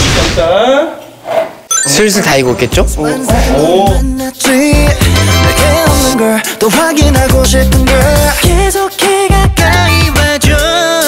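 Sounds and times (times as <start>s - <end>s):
quick run of high tones: 1.7s - 2.2s.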